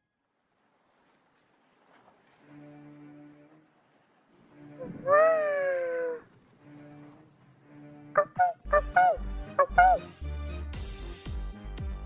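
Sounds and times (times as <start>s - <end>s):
child's high-pitched exclamation: 4.8s - 6.2s.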